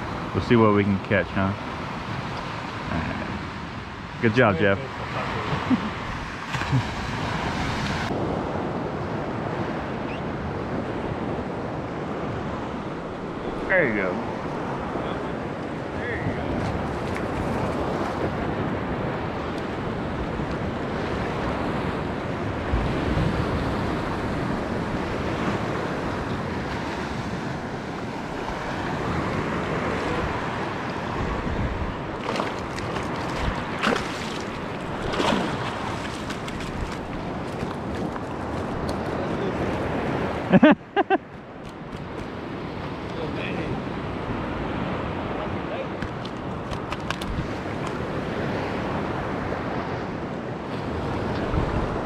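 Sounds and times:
small surf waves: 0.0 - 52.0
wind on microphone: 2.0 - 52.0.

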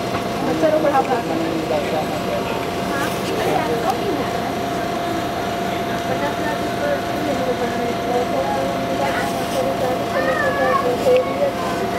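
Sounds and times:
passengers chatting: 0.0 - 11.9
train electrical hum and rumble: 0.0 - 11.9.

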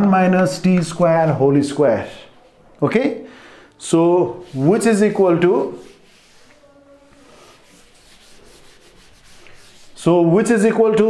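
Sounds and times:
duster rubbing on chalkboard: 4.3 - 10.3.

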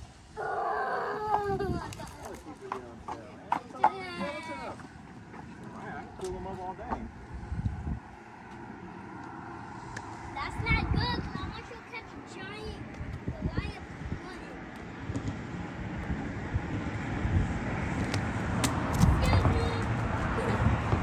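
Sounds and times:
steady background noise: 0.0 - 21.0
people speaking and calling out: 0.4 - 7.2, 10.3 - 14.7, 19.1 - 20.6.

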